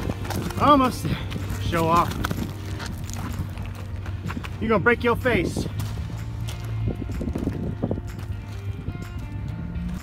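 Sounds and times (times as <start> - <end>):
footsteps crunching on gravel: 0.0 - 10.0.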